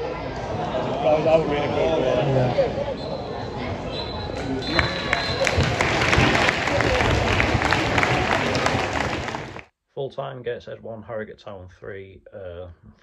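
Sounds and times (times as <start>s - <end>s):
crowd voices: 0.0s - 9.6s
referee's whistle blasts: 3.9s - 5.8s
crowd clapping: 4.7s - 9.7s.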